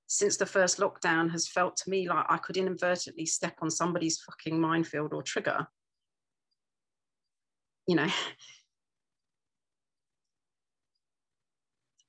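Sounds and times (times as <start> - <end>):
woman speaking: 0.1 - 5.7, 7.9 - 8.5.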